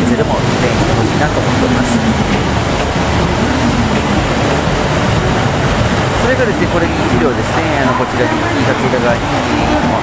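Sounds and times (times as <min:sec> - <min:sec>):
diesel train rumbling: 0:00.0 - 0:10.0.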